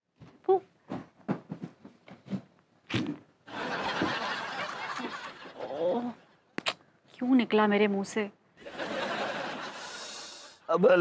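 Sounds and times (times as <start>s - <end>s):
sandal footsteps on hard floor: 0.9s - 2.5s.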